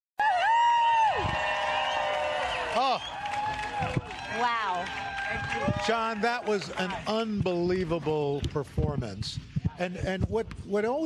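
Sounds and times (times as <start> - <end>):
high whoop: 0.2 - 6.2
crowd cheering: 0.2 - 8.4.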